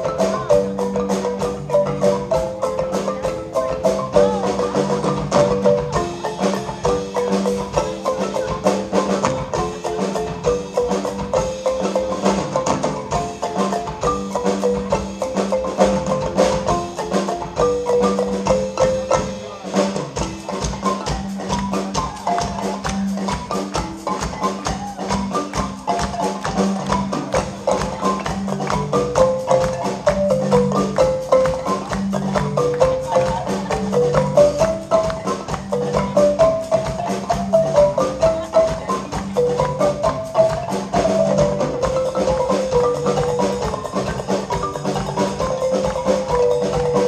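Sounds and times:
marimba ensemble playing: 0.0s - 47.0s.

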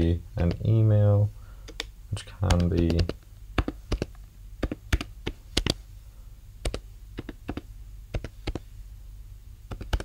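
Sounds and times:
keyboard typing: 0.4s - 0.7s, 1.7s - 5.8s, 6.6s - 8.6s, 9.7s - 10.0s.

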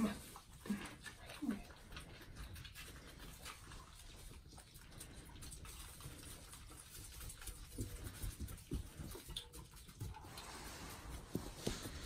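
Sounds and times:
suckling at feeding bottles: 0.0s - 12.0s.

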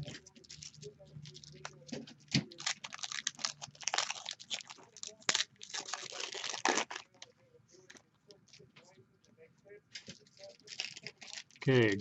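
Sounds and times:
foil wrapper crinkling: 0.0s - 8.6s, 10.0s - 11.7s.

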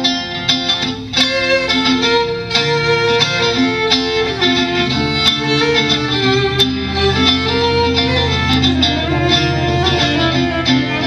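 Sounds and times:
fiddle melody: 0.0s - 11.0s
strummed acoustic guitar: 0.0s - 11.0s.

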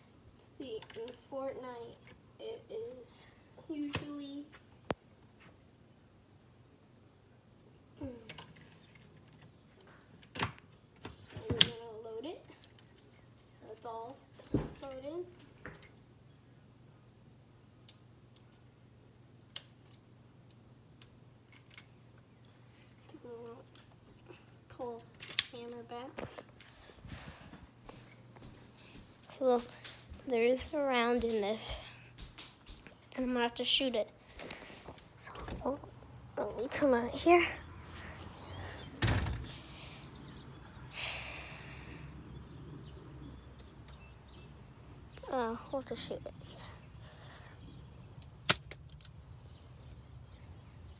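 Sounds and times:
faint outdoor background: 0.0s - 50.9s
door banging shut: 38.8s - 39.6s.

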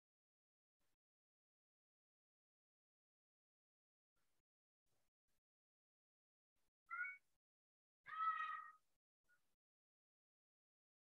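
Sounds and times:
high-pitched animal call: 8.1s - 8.8s.

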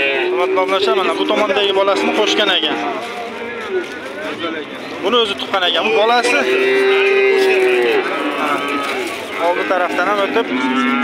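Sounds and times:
cow mooing: 0.0s - 2.9s, 6.0s - 11.0s.

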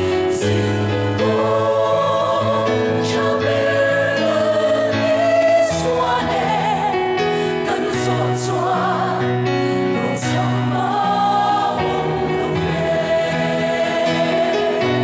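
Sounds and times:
mixed choir singing gospel: 0.0s - 15.0s.

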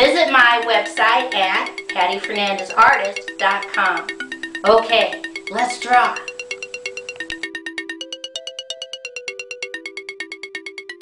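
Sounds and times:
light electronic music: 0.0s - 11.0s.

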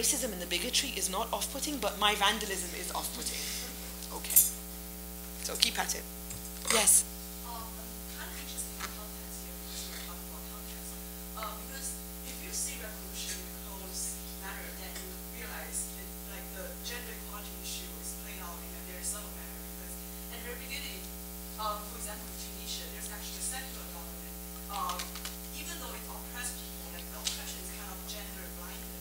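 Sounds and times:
electrical mains hum: 0.0s - 29.0s.

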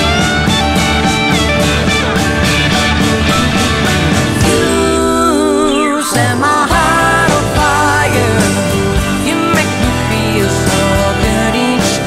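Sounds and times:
drums steady beat: 0.0s - 12.0s
rock band instrumental: 0.0s - 12.0s.

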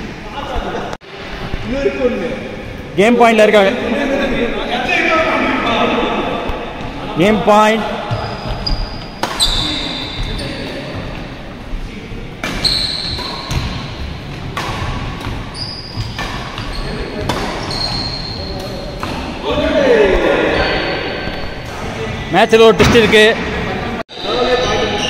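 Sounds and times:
shoes squeaking on floor: 8.0s - 11.3s, 12.6s - 19.4s
racket hitting shuttlecock: 9.2s - 9.6s, 12.4s - 17.7s.

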